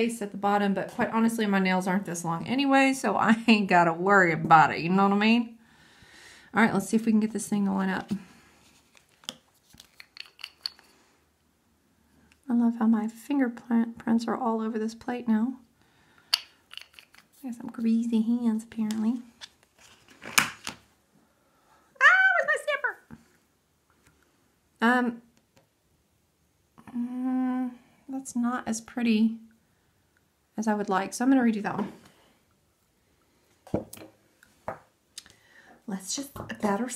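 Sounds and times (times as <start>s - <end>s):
woman humming: 26.8s - 27.8s.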